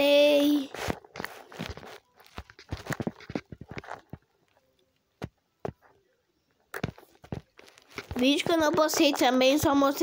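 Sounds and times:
fingertips tapping touchscreen: 0.8s - 6.0s, 6.7s - 9.8s.

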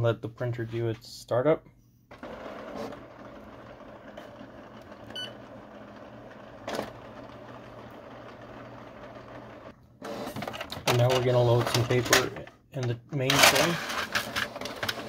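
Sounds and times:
printer mechanism whirring: 2.1s - 12.5s, 13.2s - 15.0s.

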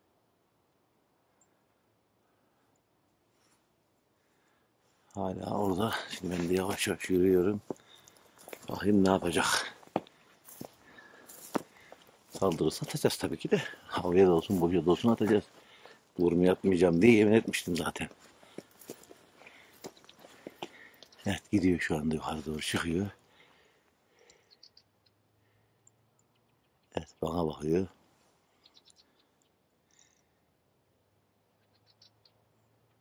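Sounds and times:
footsteps on stony ground: 5.0s - 23.2s.

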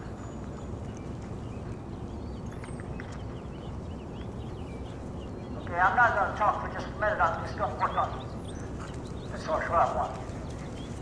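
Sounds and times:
horse hoofbeats in soft dirt: 0.0s - 6.2s, 7.3s - 11.0s
steady low rumble: 0.0s - 11.0s.

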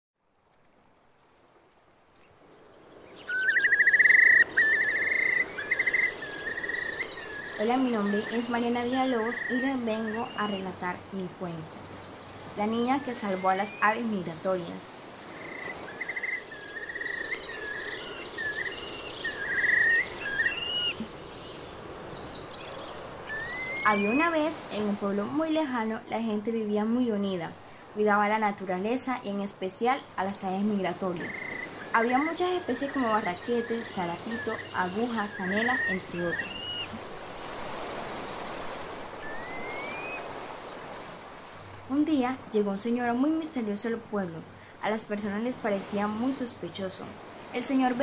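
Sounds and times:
faint outdoor background: 0.2s - 48.0s
birds singing: 2.3s - 26.1s, 29.9s - 37.0s, 37.7s - 41.0s
trilling animal calls: 3.2s - 8.6s, 15.3s - 21.2s, 23.2s - 24.4s, 31.2s - 37.0s, 39.2s - 40.4s.

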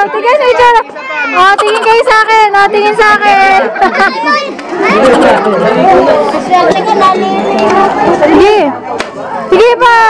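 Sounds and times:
group of voices talking and calling: 0.0s - 9.6s.

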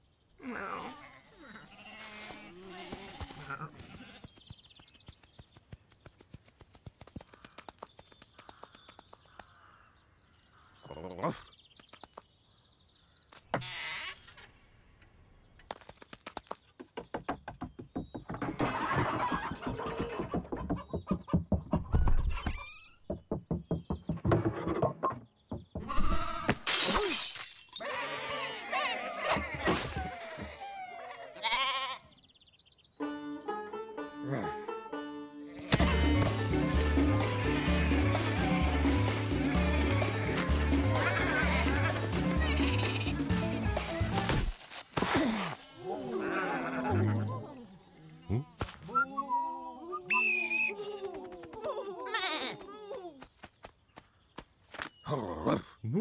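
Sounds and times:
cartoon sheep bleating: 35.6s - 36.4s.

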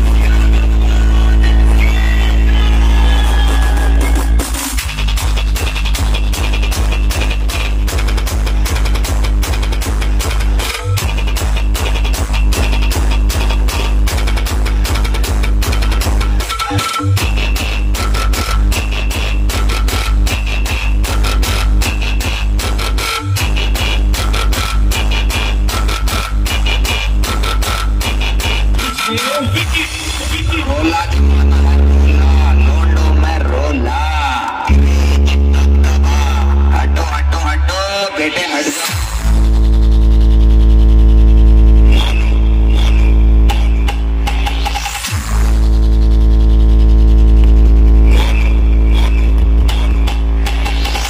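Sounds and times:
heavy bass music through speakers: 0.0s - 51.0s
high electronic sounds: 0.0s - 51.0s.

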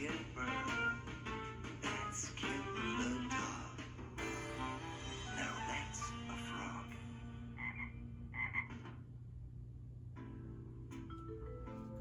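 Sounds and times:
cartoon frog croaking: 7.6s - 8.8s.

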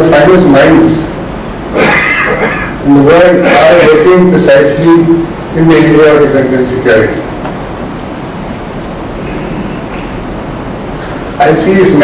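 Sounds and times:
continuous hiss: 0.0s - 12.0s.

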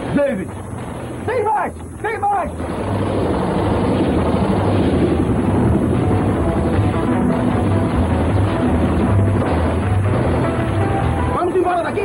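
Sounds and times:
helicopter rotor and turbine noise: 0.0s - 12.0s
low rumble: 0.0s - 12.0s.

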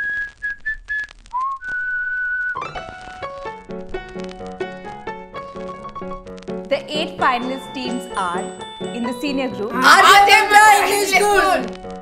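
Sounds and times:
whistled melody: 0.0s - 3.5s.

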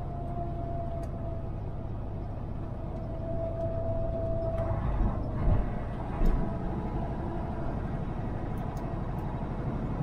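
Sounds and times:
truck engine and road rumble: 0.0s - 10.0s.

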